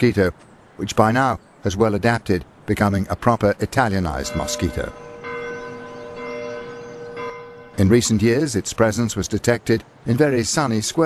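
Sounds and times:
narrator speaking: 0:00.0 - 0:05.0, 0:07.8 - 0:11.0
church bell ringing: 0:04.2 - 0:08.4.

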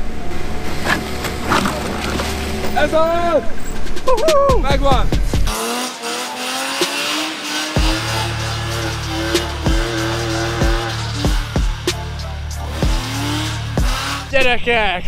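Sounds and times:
music with deep bass beat: 0:03.8 - 0:14.6
car engine revving high: 0:05.3 - 0:14.6.

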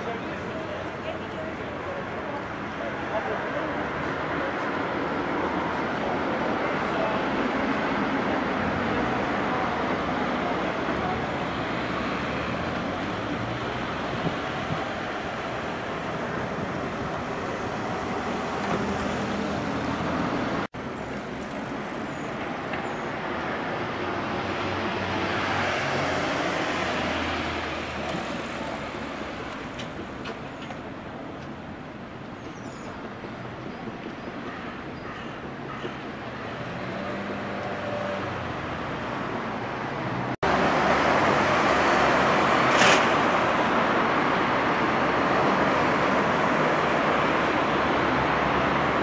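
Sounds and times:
cars passing: 0:00.0 - 0:49.0.

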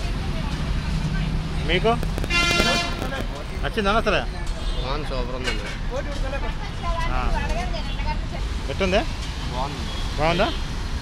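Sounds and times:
voices talking: 0:00.0 - 0:10.6
road traffic rumble: 0:00.0 - 0:11.0.

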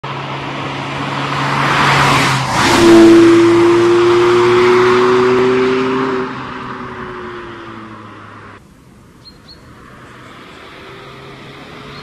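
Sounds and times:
tyre and road noise: 0:00.0 - 0:12.0.

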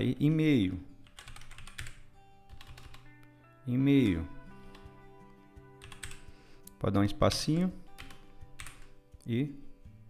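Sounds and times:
faint background music: 0:00.0 - 0:10.0
computer keyboard typing: 0:01.0 - 0:03.1, 0:05.8 - 0:06.3, 0:08.0 - 0:09.0.

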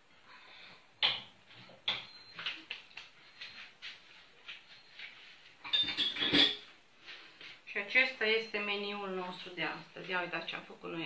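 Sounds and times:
dishes and cutlery clinking: 0:01.0 - 0:06.8.

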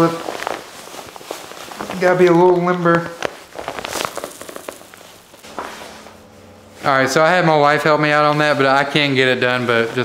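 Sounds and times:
nylon fabric rustling: 0:00.0 - 0:06.7.

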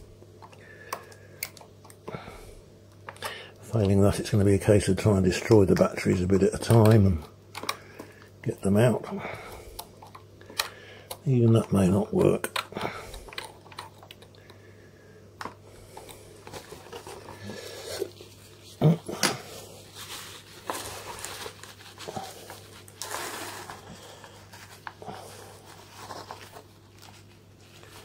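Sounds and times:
paper tissue rustling: 0:16.2 - 0:28.0.

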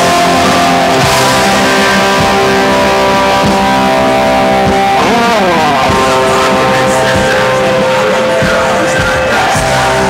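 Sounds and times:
guitar note sliding down: 0:00.0 - 0:08.3
punk rock band playing: 0:00.0 - 0:10.0.

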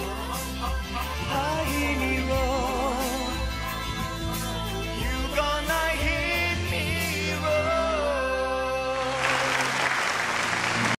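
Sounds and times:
audience applauding: 0:09.2 - 0:11.0.

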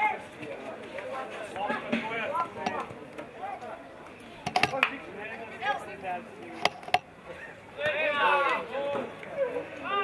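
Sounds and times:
players shouting: 0:07.8 - 0:10.0.

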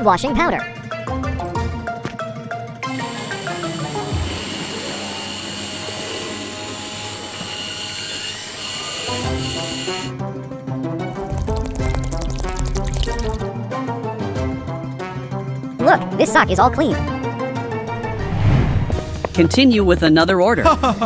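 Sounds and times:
background music: 0:00.0 - 0:21.0
toy washing machine whirring: 0:02.8 - 0:10.1
water pouring from hose: 0:11.1 - 0:13.5.

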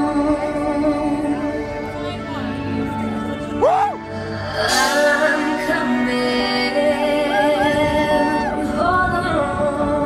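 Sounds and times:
pop song with vocals: 0:00.0 - 0:10.0.

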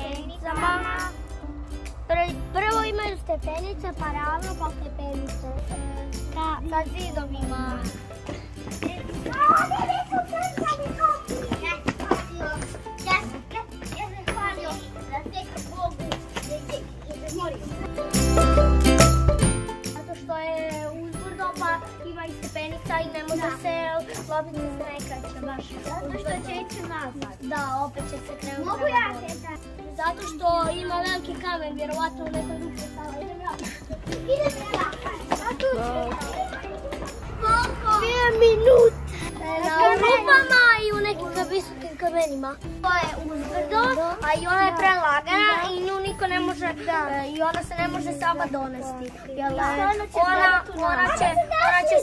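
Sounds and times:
children chattering: 0:00.0 - 0:18.8, 0:19.9 - 0:52.0
soft background music: 0:00.0 - 0:52.0
children shouting: 0:08.9 - 0:14.8, 0:32.3 - 0:46.2, 0:49.4 - 0:52.0.

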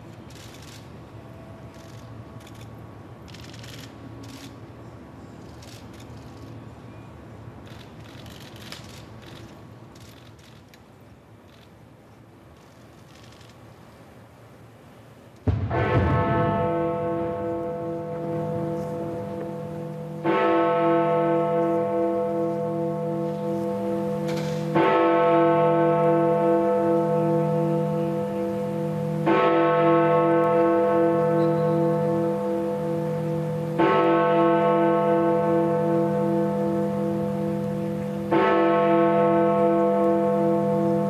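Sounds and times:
large bell striking: 0:15.5 - 0:41.0
bell hum ringing: 0:25.6 - 0:41.0
great bell striking with humming ring: 0:31.2 - 0:33.9.

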